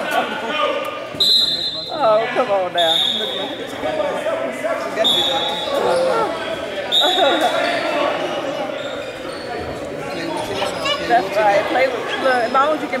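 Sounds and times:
voices echoing in a gym: 0.0s - 13.0s
sneaker squeaks: 5.0s - 11.4s.

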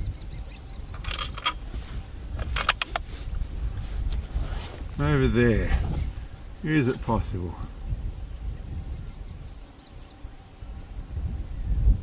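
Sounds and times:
bird chirping: 0.0s - 1.5s, 8.4s - 10.2s
wind rumble on microphone: 0.0s - 12.0s
sharp clicks: 2.4s - 3.0s.

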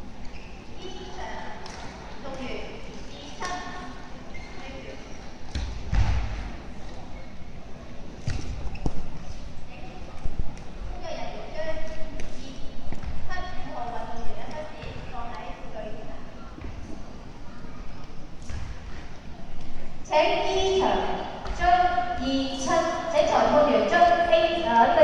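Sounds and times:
background chatter: 0.0s - 25.0s.

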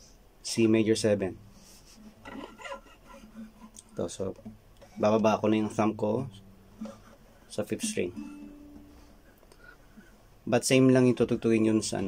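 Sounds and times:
fingers squeaking on guitar strings: 2.0s - 9.3s.

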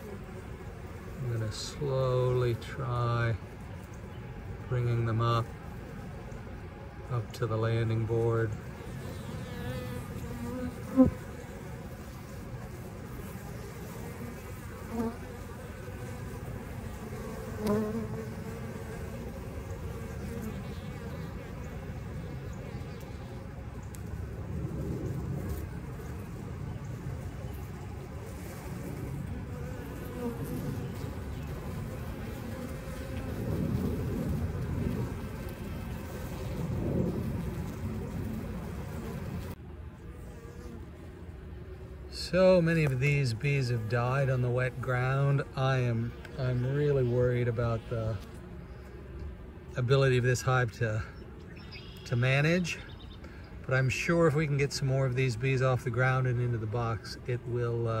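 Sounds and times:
bees buzzing: 0.0s - 58.0s.

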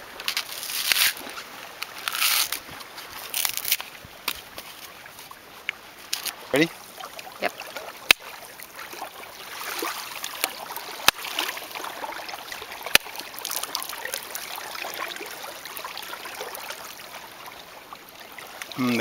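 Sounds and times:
water lapping and trickling: 0.0s - 19.0s.

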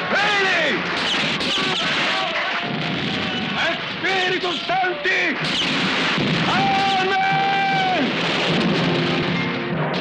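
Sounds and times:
explosions: 0.8s - 4.4s, 5.3s - 10.0s
rifle fire: 5.4s - 10.0s
person shouting: 6.5s - 8.1s.

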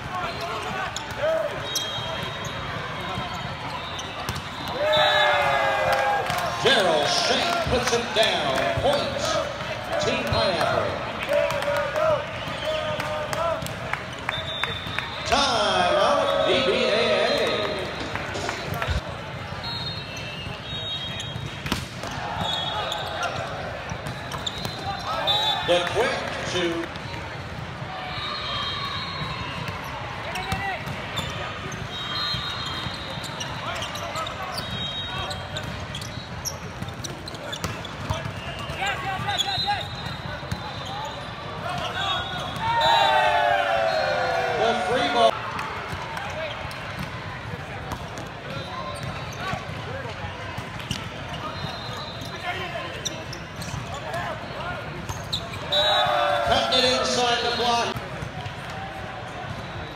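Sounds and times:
players calling: 0.1s - 27.0s, 38.1s - 45.4s, 53.9s - 58.0s
volleyball hits and bounces: 21.2s - 22.6s.

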